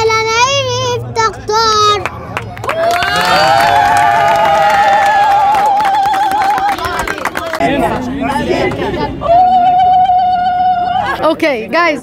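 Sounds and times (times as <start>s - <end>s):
crowd cheering and clapping: 2.0s - 7.6s.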